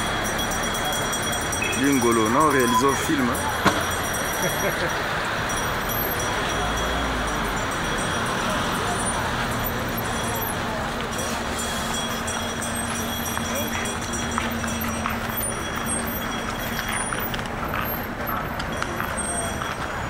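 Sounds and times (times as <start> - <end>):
car traffic: 0.0 - 20.0
chatter of people: 0.0 - 20.0.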